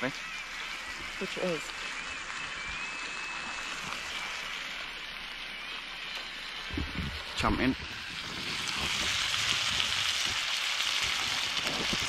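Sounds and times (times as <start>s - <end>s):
steaks sizzling in a pan: 0.0s - 12.0s.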